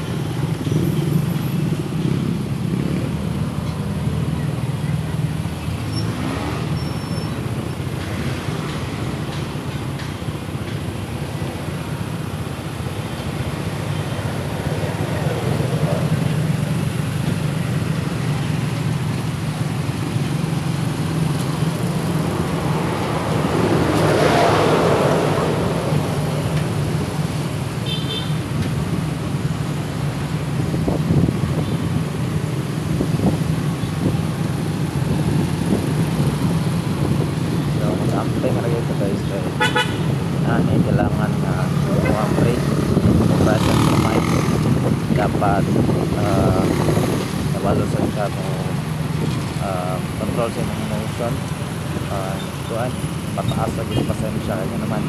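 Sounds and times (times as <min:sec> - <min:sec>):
traffic engine drone: 0:00.0 - 0:55.0
vehicle passing loudly: 0:14.2 - 0:27.7, 0:30.1 - 0:52.2.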